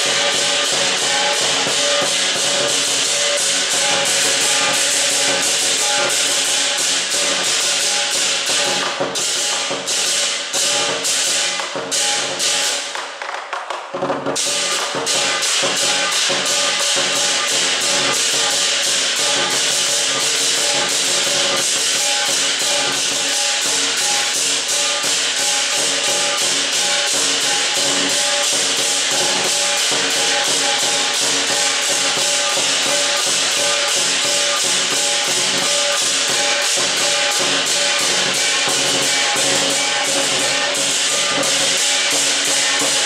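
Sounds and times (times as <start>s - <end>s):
gong: 0.0s - 12.9s, 14.4s - 43.0s
hand cymbals clashing: 0.0s - 12.9s, 14.4s - 43.0s
drum: 0.0s - 43.0s.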